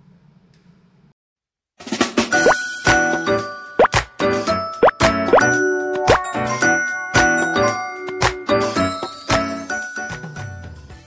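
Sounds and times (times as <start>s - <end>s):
bright jingle with chiming notes: 2.6s - 10.9s
upward-sliding plop effects: 3.8s - 4.0s.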